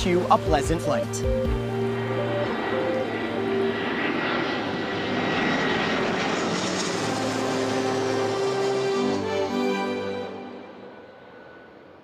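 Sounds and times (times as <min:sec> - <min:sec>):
background music notes: 0:00.0 - 0:11.1
jet airliner passing overhead: 0:00.0 - 0:12.0.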